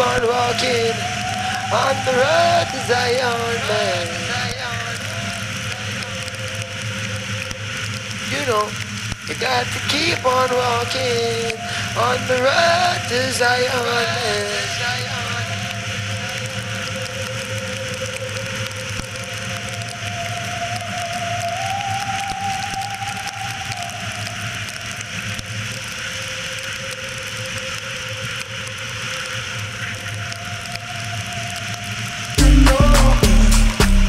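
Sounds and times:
wind and wet road noise: 0:00.0 - 0:32.4.

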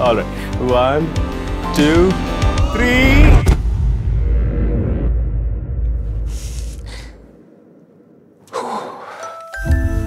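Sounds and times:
low rumble: 0:02.8 - 0:08.3.

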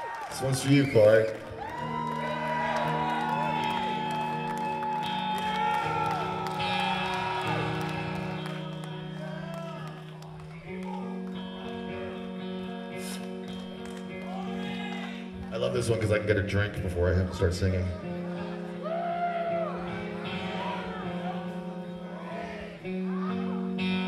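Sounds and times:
audience cheering: 0:00.0 - 0:11.8, 0:13.6 - 0:15.4, 0:18.7 - 0:22.8
electric guitar chords: 0:01.4 - 0:24.0.

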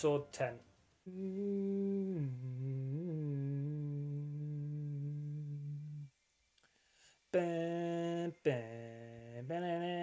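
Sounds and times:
man humming: 0:01.1 - 0:06.1, 0:07.4 - 0:10.0.

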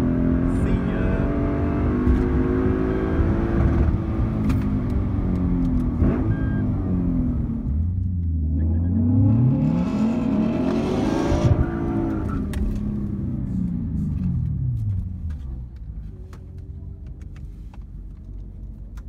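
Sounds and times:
car engine revving: 0:00.0 - 0:15.4.

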